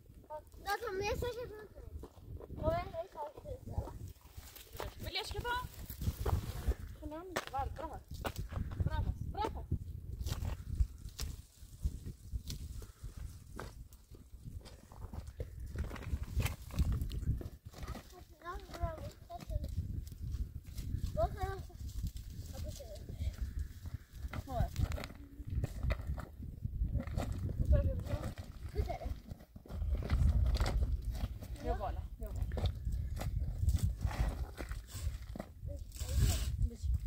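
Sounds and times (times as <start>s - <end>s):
wind rumble on microphone: 0.0s - 37.0s.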